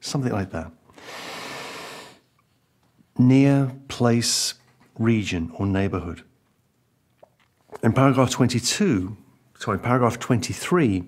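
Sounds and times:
man breathing in: 0.9 - 2.3.

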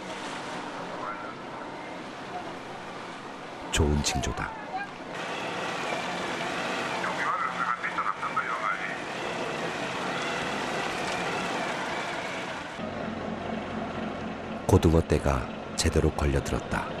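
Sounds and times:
sea noise: 0.0 - 12.8
crew voices shouting: 4.4 - 12.8
heavy rain: 5.2 - 12.8.

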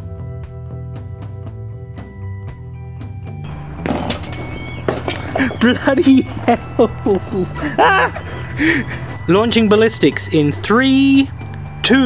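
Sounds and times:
background music: 0.0 - 12.0
balls bouncing on hard ground: 3.5 - 8.2.

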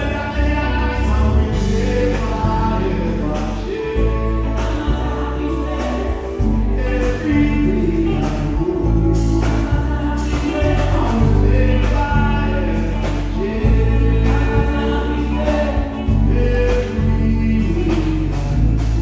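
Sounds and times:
bass guitar: 0.0 - 19.0
choir singing gospel: 0.0 - 19.0
drums: 0.0 - 19.0
keyboards: 0.0 - 19.0.

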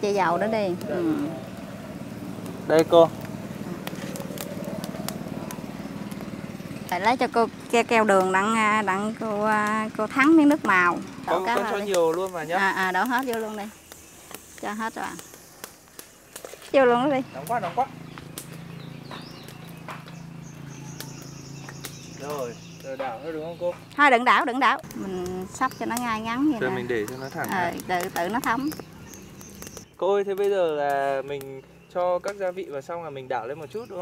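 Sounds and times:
small engine humming: 0.0 - 29.9
bird chirping: 0.0 - 34.0
wood fire crackling: 0.0 - 34.0.

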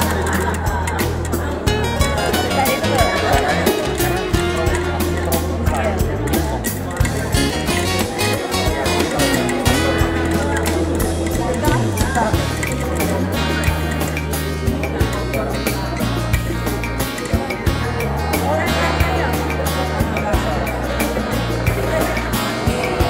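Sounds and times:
popcorn popping in a covered pan: 0.0 - 15.3
background music with bass line: 0.0 - 23.0.

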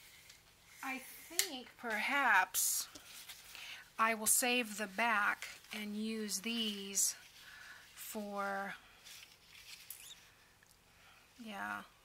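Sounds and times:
paper rustling and scraping: 9.0 - 10.3.

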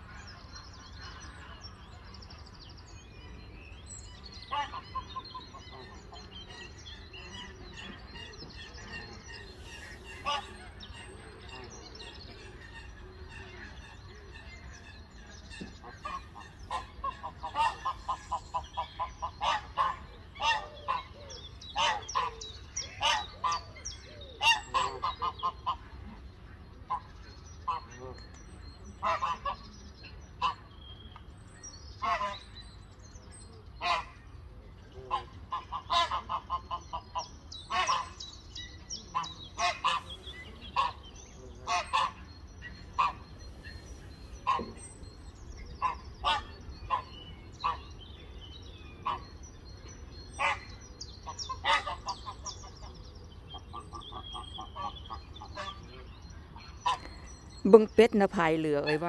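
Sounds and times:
small birds twittering: 0.0 - 59.0
geese honking: 7.3 - 23.8, 24.4 - 26.2, 35.1 - 38.2, 39.0 - 48.0, 48.9 - 52.9, 53.6 - 57.2.

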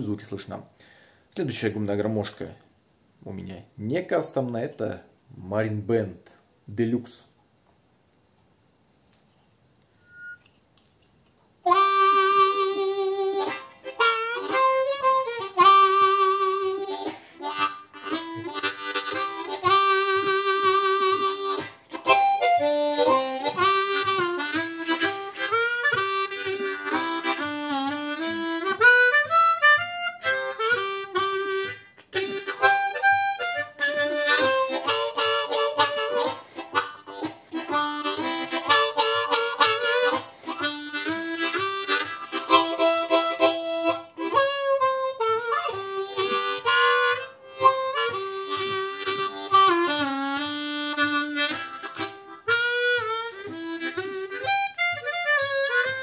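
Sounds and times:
harmonica playing: 10.0 - 10.6, 11.6 - 56.0.

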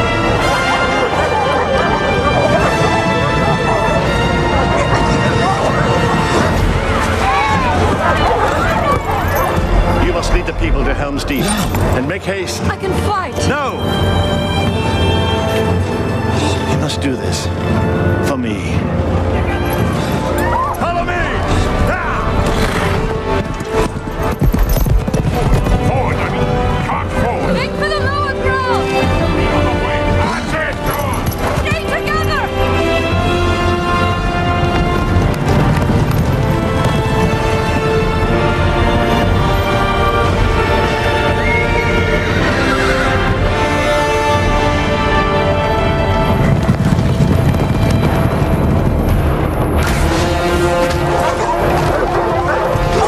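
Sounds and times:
horse hooves clattering: 0.0 - 16.9, 18.8 - 53.0
orchestral film score: 0.0 - 53.0.

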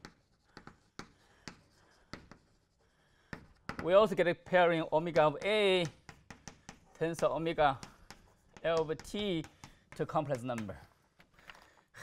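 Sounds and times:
chalk writing on blackboard: 0.0 - 11.3
man talking: 3.8 - 5.9, 7.0 - 7.9, 8.6 - 10.9.

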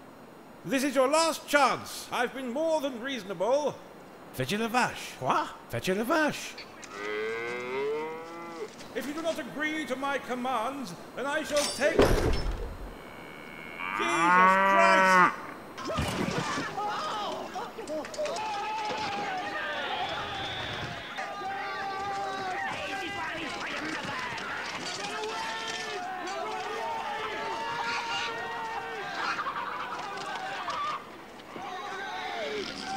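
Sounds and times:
cow mooing: 13.0 - 15.5
men yelling: 16.7 - 32.9.

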